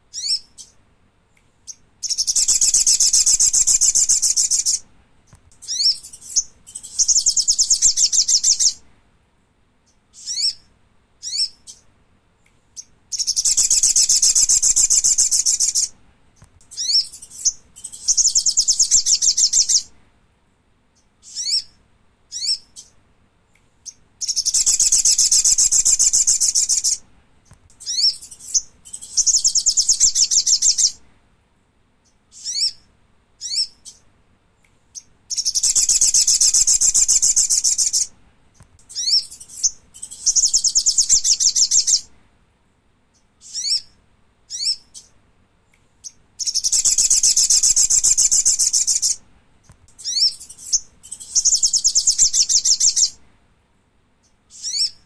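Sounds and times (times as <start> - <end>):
bird high rapid trills: 2.0 - 4.8, 13.1 - 15.9, 24.2 - 27.0, 35.3 - 38.1, 46.4 - 49.2.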